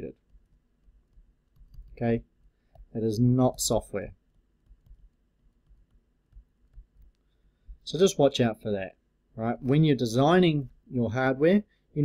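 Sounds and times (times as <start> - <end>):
stylus tapping on a tablet: 0.2 - 3.0, 4.2 - 7.9.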